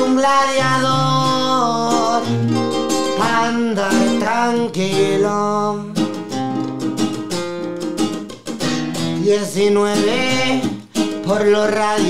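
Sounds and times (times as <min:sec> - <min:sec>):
person singing: 0:00.0 - 0:06.2, 0:09.1 - 0:12.0
acoustic guitar strumming chords: 0:00.0 - 0:12.0.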